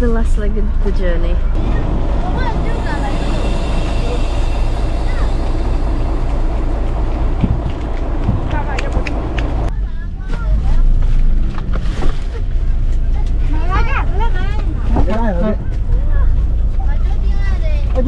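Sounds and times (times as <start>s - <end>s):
people talking: 0.0s - 5.9s, 8.4s - 11.0s
bus engine idling: 0.0s - 11.4s
knocks of passengers boarding: 6.6s - 9.7s.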